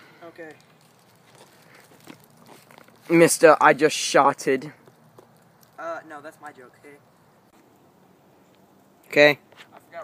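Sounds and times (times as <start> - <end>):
twigs and dry leaves crackling: 0.2 - 7.8.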